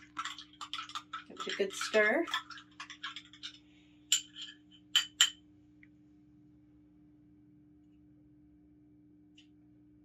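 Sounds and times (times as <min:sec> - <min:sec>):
spoon clinking against glass: 0:00.1 - 0:05.4.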